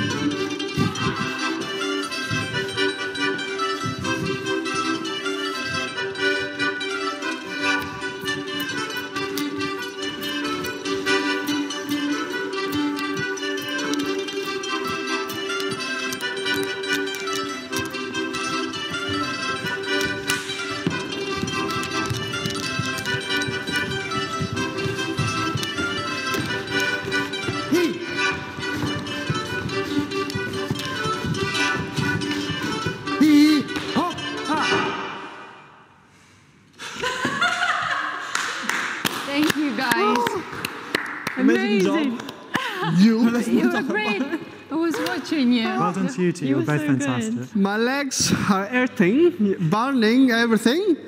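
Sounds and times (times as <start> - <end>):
lively folk dance music: 0.0 - 46.4
boots stamping on wooden floor: 12.8 - 34.0.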